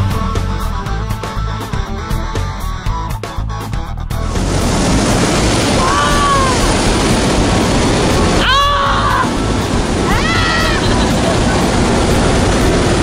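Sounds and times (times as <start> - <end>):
plane engine and propeller drone: 4.2 - 13.0
person crying out: 5.8 - 6.7, 8.4 - 9.4, 10.1 - 11.0.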